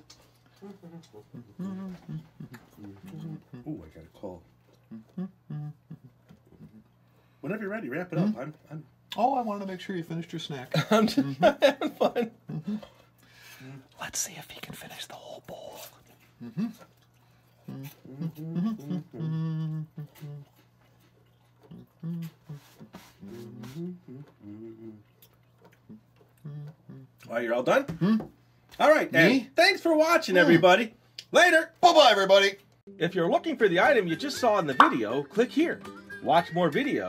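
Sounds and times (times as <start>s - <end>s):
person humming: 0.6s - 3.9s, 4.9s - 6.8s, 16.4s - 16.9s, 17.7s - 20.6s, 21.7s - 25.2s, 26.4s - 27.2s, 27.9s - 28.3s
breathy noises: 21.7s - 25.2s.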